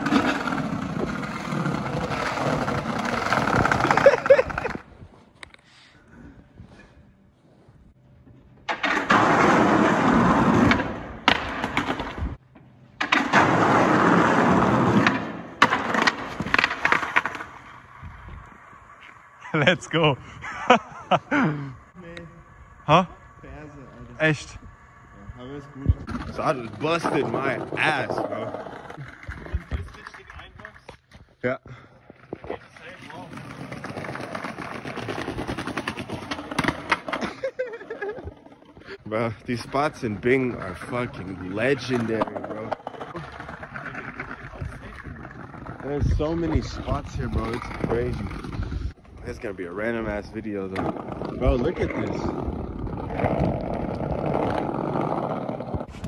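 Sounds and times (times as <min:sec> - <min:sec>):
skater crashing: 0:00.0 - 0:04.8, 0:08.7 - 0:12.4, 0:13.0 - 0:19.2, 0:26.0 - 0:30.8, 0:32.1 - 0:46.0, 0:50.4 - 0:56.0
skateboard wheels rolling on pavement: 0:00.0 - 0:05.7, 0:06.4 - 0:56.0.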